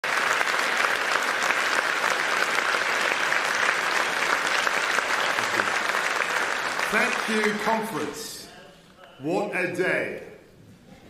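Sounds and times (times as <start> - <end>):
audience applauding: 0.0 - 8.4.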